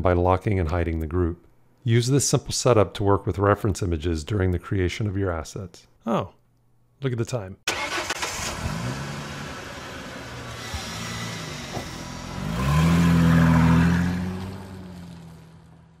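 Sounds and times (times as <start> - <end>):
car engine revving: 7.7 - 16.0.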